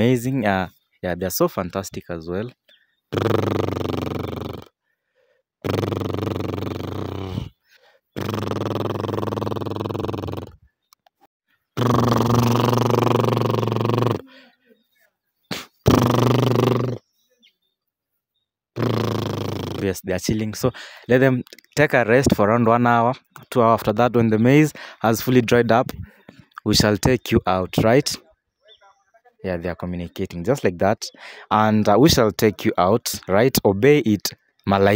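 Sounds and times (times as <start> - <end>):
horses nickering: 5.6 - 10.7, 11.8 - 14.6.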